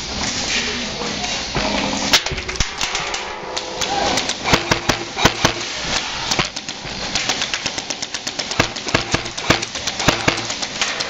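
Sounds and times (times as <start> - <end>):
pellets striking surfaces: 2.6 - 11.0
airsoft gunfire: 3.9 - 5.7, 6.5 - 10.7.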